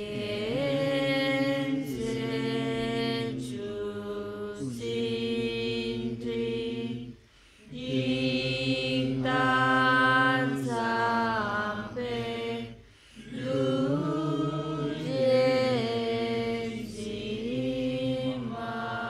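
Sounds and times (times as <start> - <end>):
voices chanting prayer: 0.0 - 19.0.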